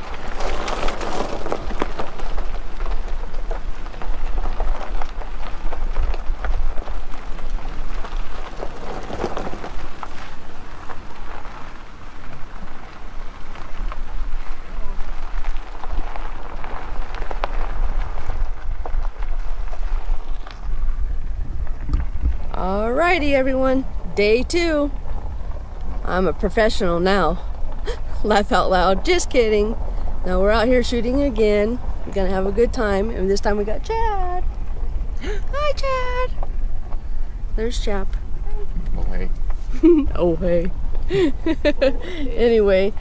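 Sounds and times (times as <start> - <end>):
gravel crunching under tyres: 0.0 - 43.0
vehicle rumbling on gravel road: 0.0 - 43.0.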